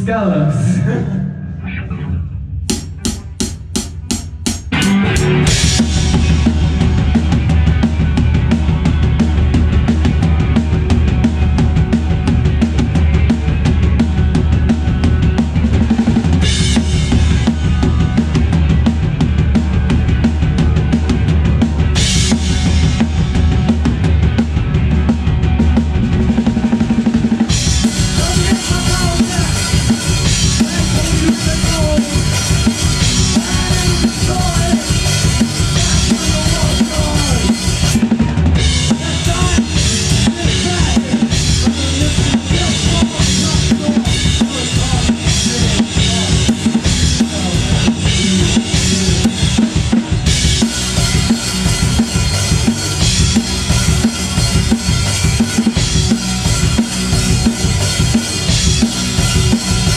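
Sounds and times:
rock band playing: 0.0 - 59.9.

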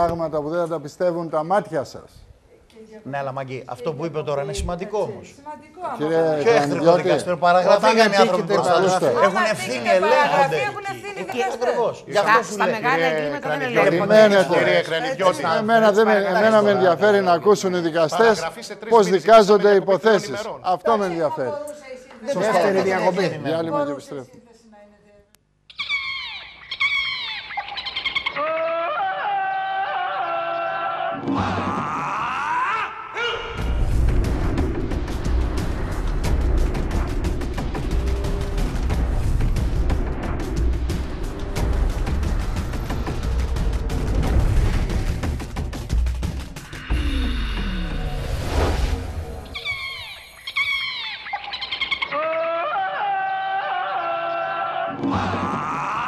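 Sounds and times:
jungle animal calls: 25.7 - 33.6, 49.4 - 56.0
falling sliding tones: 46.7 - 51.2.

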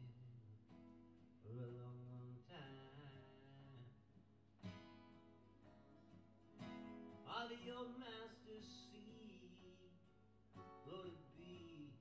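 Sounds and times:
acoustic guitars playing folk music: 0.0 - 12.0.

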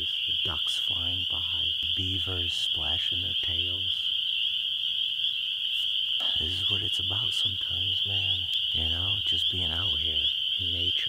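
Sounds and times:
frogs chorus calling: 0.0 - 11.0.

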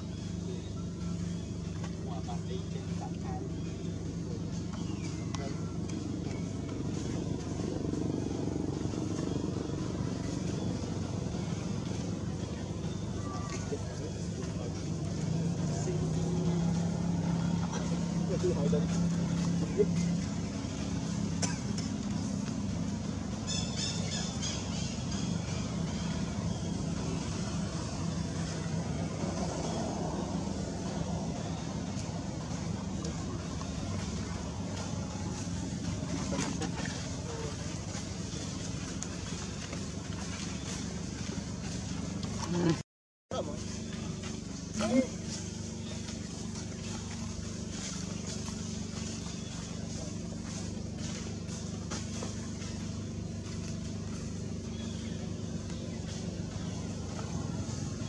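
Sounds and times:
motor droning: 0.0 - 58.0.

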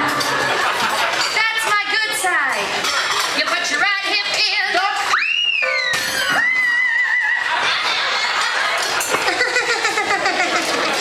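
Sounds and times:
crowd chatter and laughter: 0.0 - 11.0
whistle-like comic whoop: 5.1 - 7.5.

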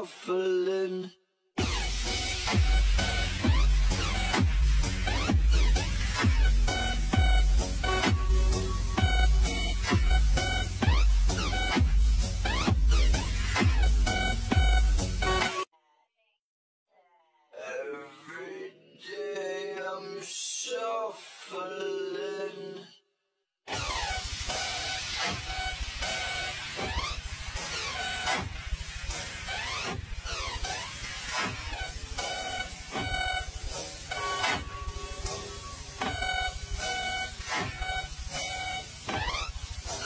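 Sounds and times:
slowed-down pop song: 0.0 - 15.7, 17.6 - 22.9
slowed sung vocal wail: 17.5 - 23.0.

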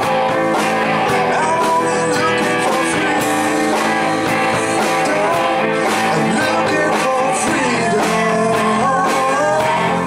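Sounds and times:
electric guitar: 0.0 - 10.0
live rock band: 0.0 - 10.0.

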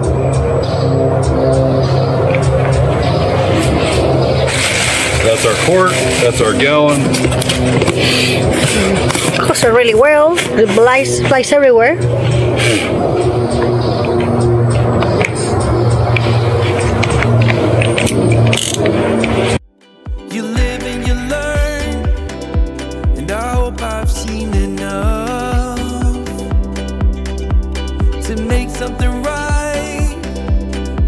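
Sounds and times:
low motor hum: 0.0 - 19.6.

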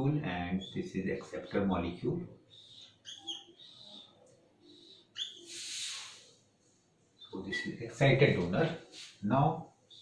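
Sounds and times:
marker squeaking on whiteboard: 0.5 - 6.3
breathy hiss: 4.6 - 6.7.

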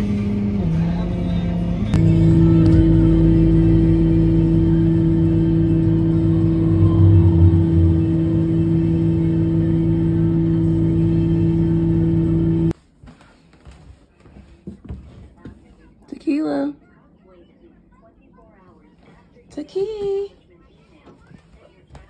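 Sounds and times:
truck engine droning: 0.0 - 12.7.

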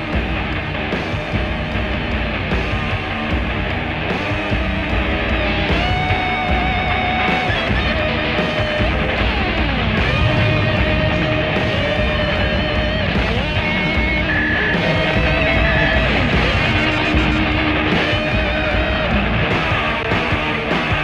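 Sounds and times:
dense film score music: 0.0 - 20.4
guitar: 0.0 - 21.0.

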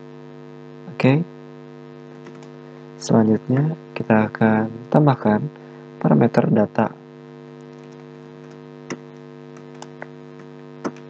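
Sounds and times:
electrical mains hum: 0.0 - 11.0
keyboard typing clicks: 2.2 - 2.5, 7.6 - 11.0.

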